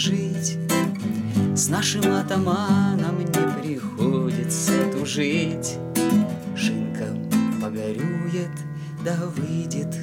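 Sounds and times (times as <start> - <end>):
classical guitar strumming: 0.0 - 10.0
person singing: 0.0 - 10.0.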